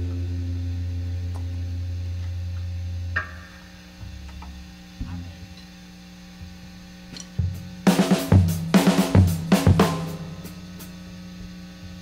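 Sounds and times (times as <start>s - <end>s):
low electric string note: 0.0s - 5.6s
amplifier hum: 0.0s - 12.0s.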